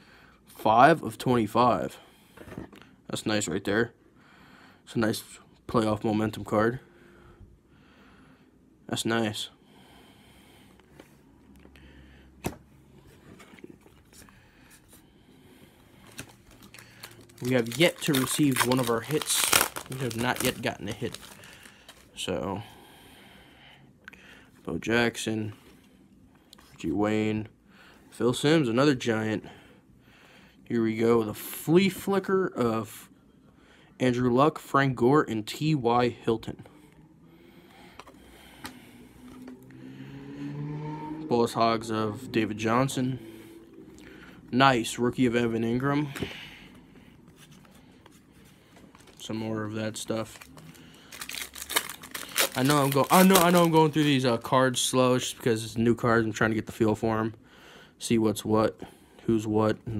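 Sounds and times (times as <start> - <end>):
trading cards rustling: 15.9 - 22.2, 45.2 - 54.5.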